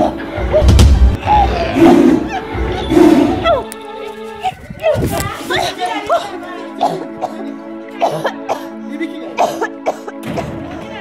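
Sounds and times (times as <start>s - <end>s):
low sustained background music: 0.0s - 11.0s
person coughing: 6.8s - 7.4s, 8.0s - 8.7s, 9.4s - 10.6s.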